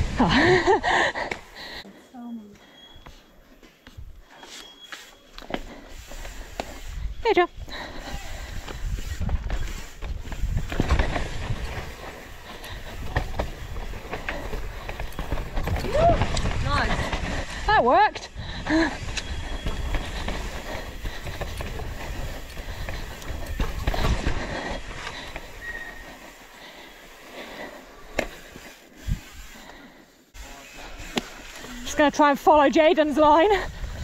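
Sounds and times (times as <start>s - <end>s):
bike tyre rumble on dirt: 0.0s - 1.2s, 5.6s - 34.0s
wind on microphone: 33.2s - 34.0s.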